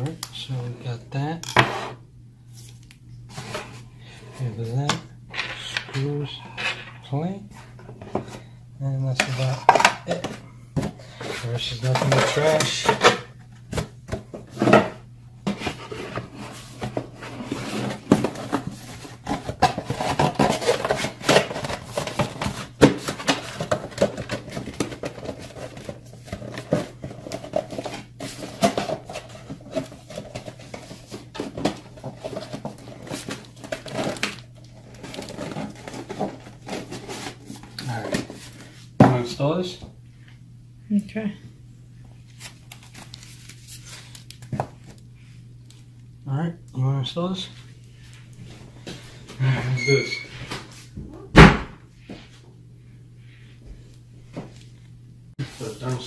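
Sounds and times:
steady low hum: 0:00.0 - 0:56.0
paper and plastic handled: 0:15.5 - 0:38.7.

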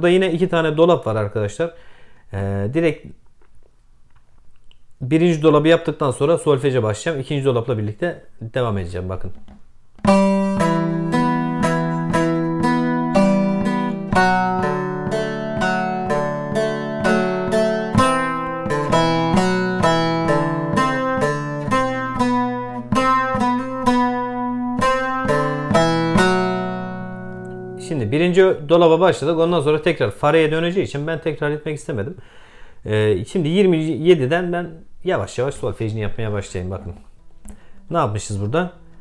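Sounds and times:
plucked long-necked lute melody: 0:09.4 - 0:28.2, 0:38.7 - 0:39.0.

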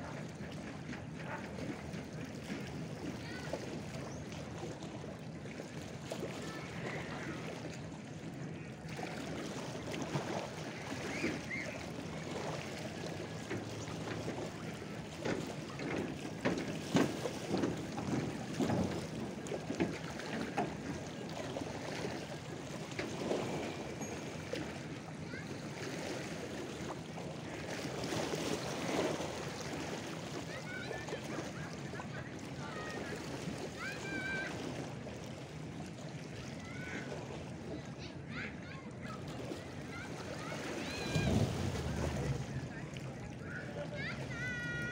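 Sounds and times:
lake waves lapping on shore: 0:00.0 - 0:44.9.

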